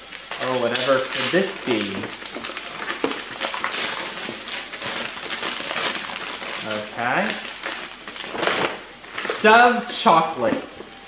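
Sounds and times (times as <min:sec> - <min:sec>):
wrapping paper crinkling and tearing: 0:00.0 - 0:11.0.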